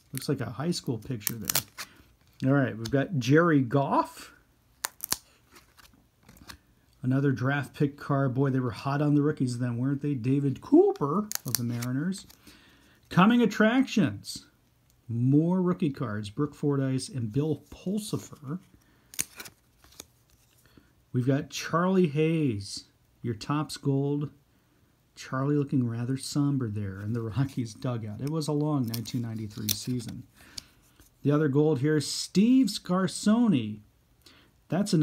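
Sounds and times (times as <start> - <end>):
cards snapping apart: 1.2 - 1.9, 4.8 - 6.6, 11.2 - 12.4, 19.1 - 20.1, 28.8 - 30.7.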